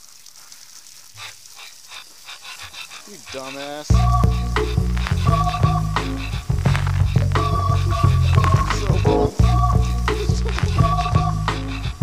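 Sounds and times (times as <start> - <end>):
garden hose spraying water: 0.0 - 12.0
dog panting: 1.2 - 4.9.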